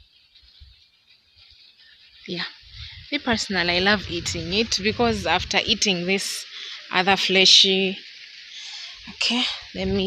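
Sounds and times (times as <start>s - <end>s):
wind buffeting microphone: 2.6s - 6.4s, 9.6s - 10.0s.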